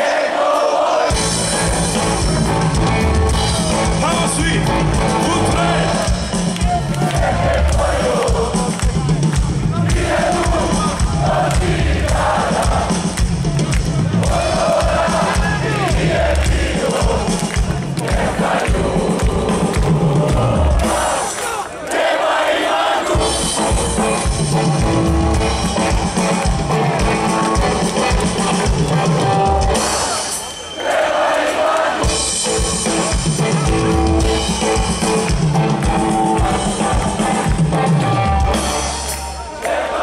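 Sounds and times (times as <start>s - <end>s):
crowd voices: 0.0s - 40.0s
live rock band playing: 1.1s - 18.0s, 23.2s - 30.7s, 32.0s - 39.5s
heavy drum and bass beat: 1.1s - 21.4s, 23.1s - 30.5s, 32.0s - 39.3s.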